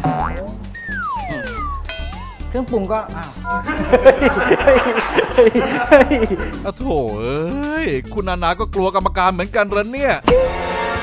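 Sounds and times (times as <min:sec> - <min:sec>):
background music: 0:00.0 - 0:11.0
ringing tone: 0:00.8 - 0:02.6.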